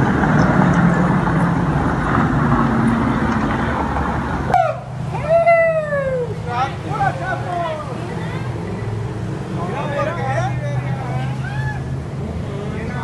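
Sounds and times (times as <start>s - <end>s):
people talking indistinctly: 5.9s - 13.0s.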